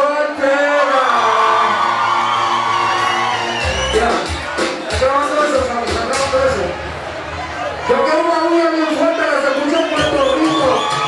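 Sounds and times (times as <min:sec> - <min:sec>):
live reggaeton music: 0:00.0 - 0:11.0
crowd cheering and whooping: 0:00.6 - 0:04.6, 0:06.3 - 0:11.0.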